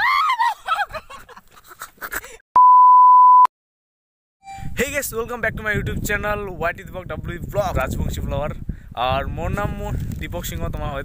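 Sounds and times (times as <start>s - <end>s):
steady electronic test tone beep: 2.6s - 3.5s, 4.4s - 4.8s.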